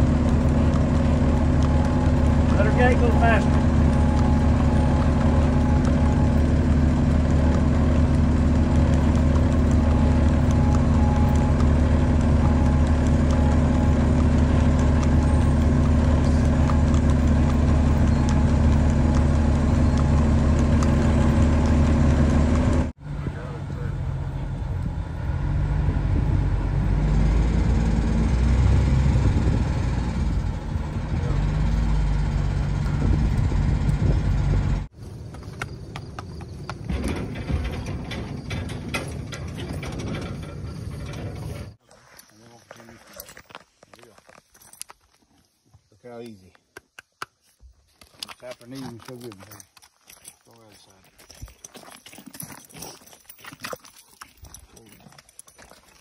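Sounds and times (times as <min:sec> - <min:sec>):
vehicle engine at low speed: 0:00.0 - 0:41.8.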